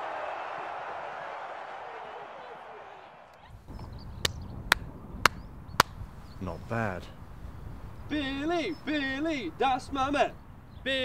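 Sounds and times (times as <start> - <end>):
sharp handclaps: 4.2 - 6.0.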